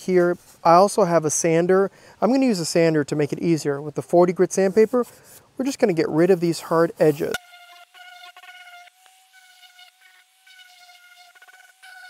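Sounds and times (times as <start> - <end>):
electric sander buzzing whine: 7.0 - 12.0.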